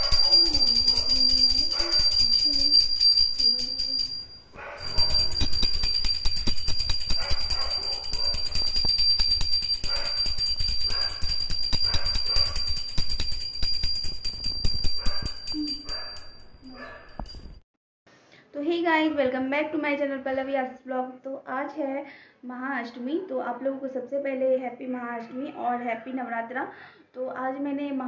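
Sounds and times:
hand bell rung rapidly: 0:00.0 - 0:17.6.

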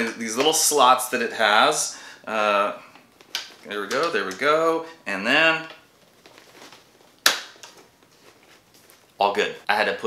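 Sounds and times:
handling noise: 0:05.4 - 0:09.2.

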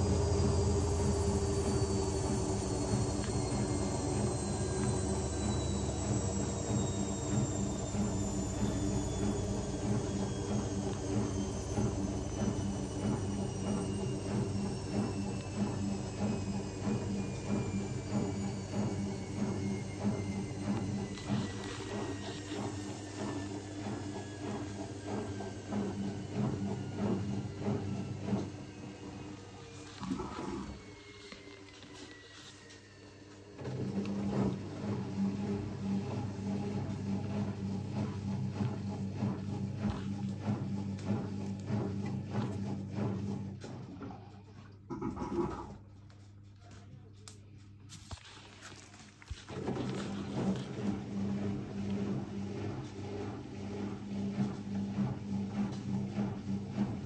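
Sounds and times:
washing machine motor whine: 0:00.0 - 0:46.5, 0:47.2 - 0:57.0.

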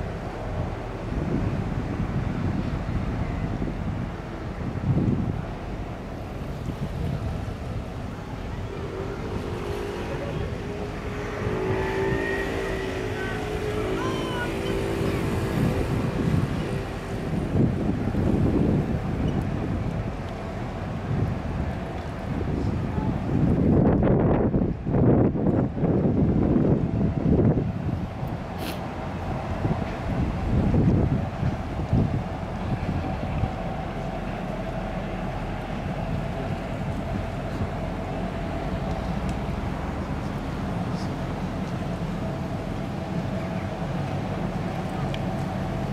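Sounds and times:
ship engines humming: 0:00.0 - 0:45.9
wind buffeting microphone: 0:00.0 - 0:45.9.

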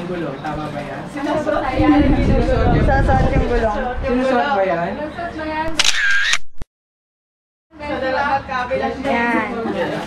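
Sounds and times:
camera shutter burst: 0:05.7 - 0:06.6
camera shutter click: 0:05.7 - 0:06.6.

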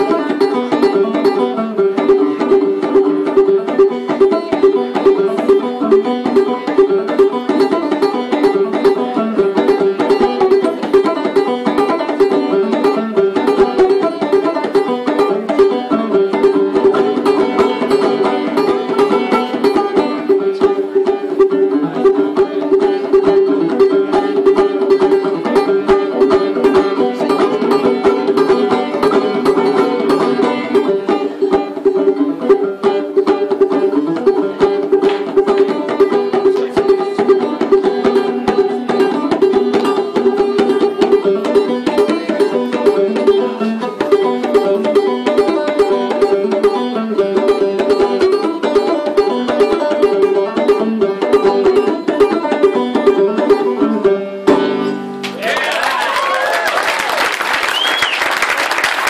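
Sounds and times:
fast banjo picking: 0:00.0 - 0:56.3.

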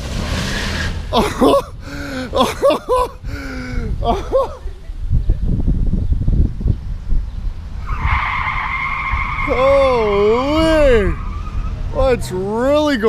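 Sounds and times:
low rumbling with thumps: 0:00.0 - 0:08.5.

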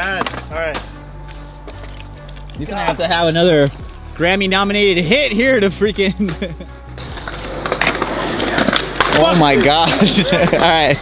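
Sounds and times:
bike tyres rolling on concrete: 0:00.0 - 0:05.1, 0:05.8 - 0:11.0.

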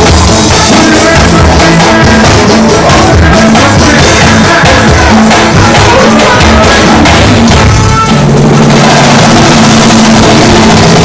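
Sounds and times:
bass line: 0:00.0 - 0:11.0
drums: 0:00.0 - 0:11.0
live band playing: 0:00.0 - 0:11.0.

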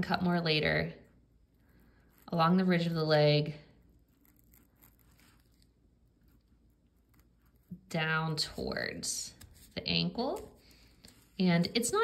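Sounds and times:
scalpel blade scratching skin: 0:04.1 - 0:05.7.

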